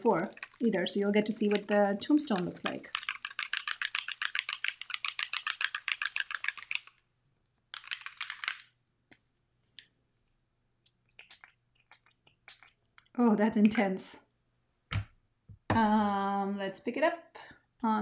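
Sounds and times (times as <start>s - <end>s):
spray bottle ball rattling: 0.1s - 7.0s, 7.7s - 8.7s, 11.1s - 13.1s
faint clicks and taps: 1.4s - 6.9s.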